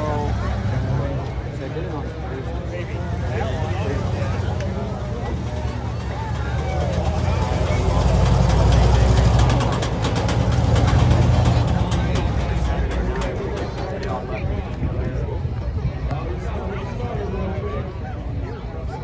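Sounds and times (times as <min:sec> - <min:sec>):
monster truck engine running: 0:00.0 - 0:15.2
crowd chatter: 0:00.0 - 0:19.0.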